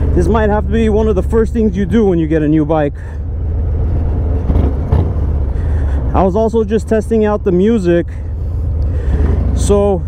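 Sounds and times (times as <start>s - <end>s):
motorcycle engine rumble: 0.0s - 10.0s
wind and road noise: 0.0s - 10.0s.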